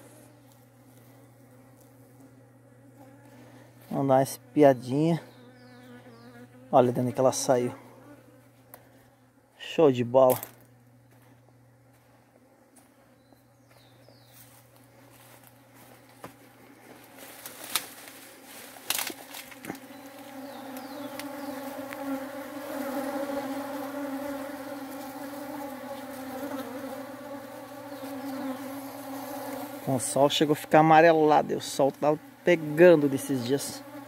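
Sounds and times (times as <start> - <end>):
honeybees buzzing: 0.0 - 34.0.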